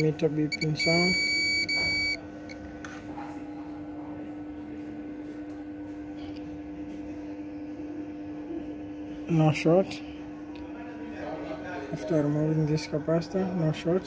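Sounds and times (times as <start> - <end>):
multimeter continuity beep: 0.0 - 2.6
low steady hum: 0.0 - 14.0.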